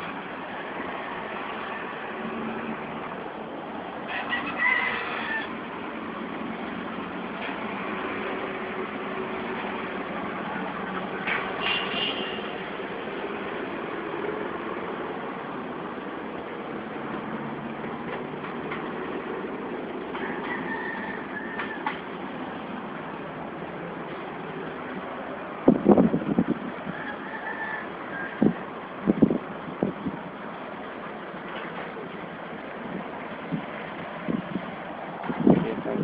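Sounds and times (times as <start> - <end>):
distant road traffic: 0.0 - 36.0
rooster crowing: 4.0 - 5.7, 20.0 - 22.2, 26.8 - 28.6.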